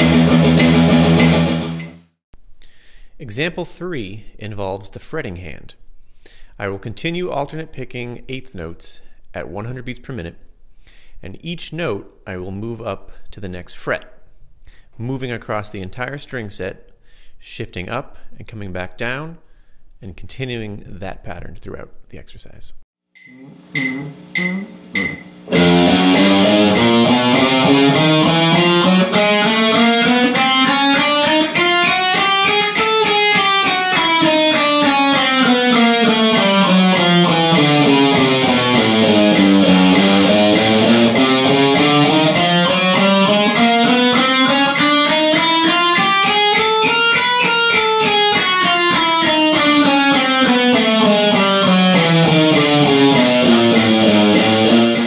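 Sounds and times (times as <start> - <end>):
electric guitar picking notes: 0.0 - 2.1, 23.2 - 55.0.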